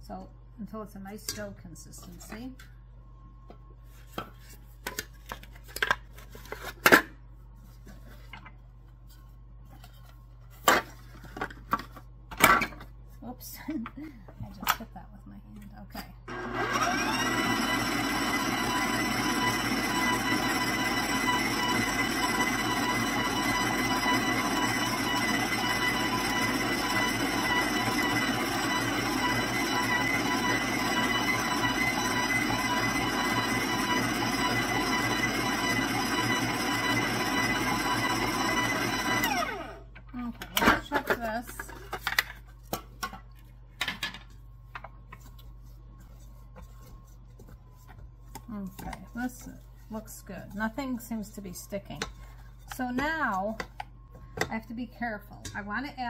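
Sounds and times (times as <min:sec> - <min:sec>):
stand mixer motor running: 0:16.3 - 0:39.8.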